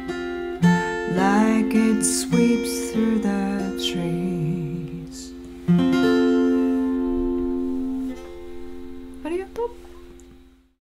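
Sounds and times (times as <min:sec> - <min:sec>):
acoustic guitar chord ringing: 0:00.0 - 0:10.7.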